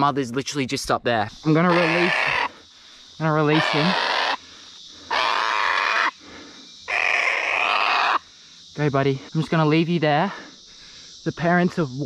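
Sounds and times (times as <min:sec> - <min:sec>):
cockatoo screeching: 0:01.5 - 0:02.6, 0:03.4 - 0:04.4, 0:05.1 - 0:06.2, 0:06.9 - 0:08.2.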